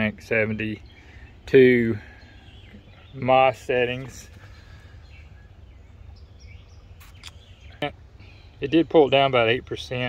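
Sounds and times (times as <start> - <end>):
faint bird chirps: 0.7 - 9.4.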